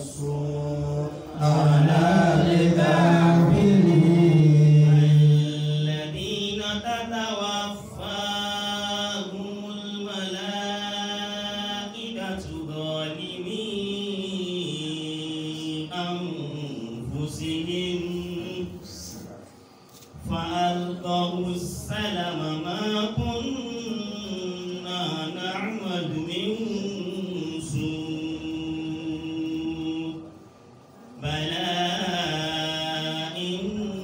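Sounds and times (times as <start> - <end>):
man chanting into a microphone: 0.0 - 19.3, 20.1 - 30.4, 31.2 - 34.0.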